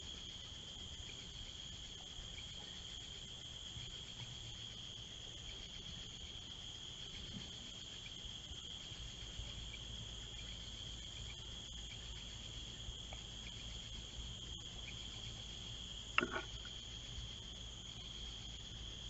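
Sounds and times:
insects trilling: 0.0s - 19.0s.

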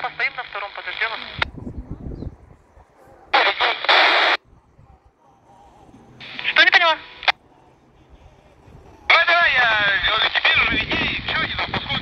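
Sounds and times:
radio static hiss: 0.0s - 1.5s, 3.3s - 4.4s, 6.2s - 7.4s, 9.1s - 12.0s.

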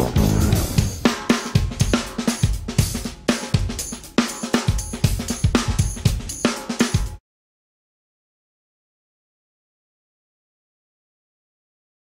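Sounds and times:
drum kit playing busy groove: 0.0s - 7.2s.

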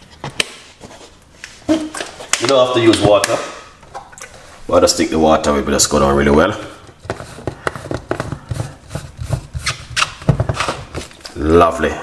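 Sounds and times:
plastic blender base being screwed on: 6.9s - 11.4s.

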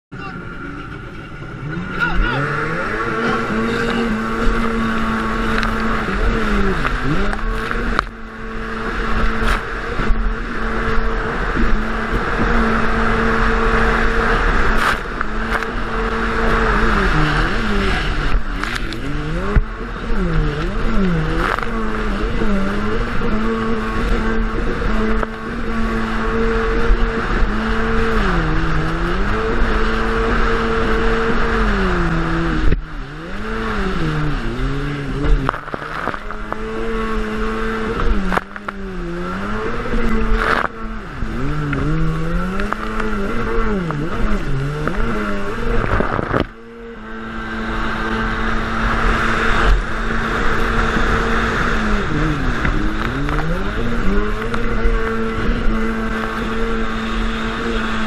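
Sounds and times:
watercraft engine revving: 0.2s - 58.0s
wind rumble on microphone: 0.4s - 58.0s.

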